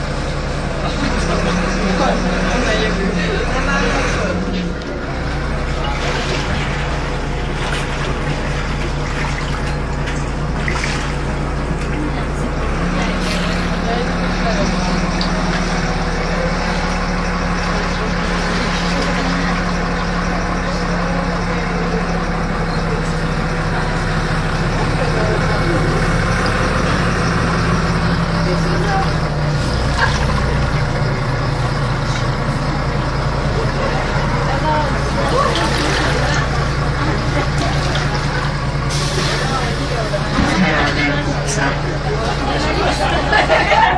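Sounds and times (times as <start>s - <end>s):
bus engine drone: 0.0s - 43.9s.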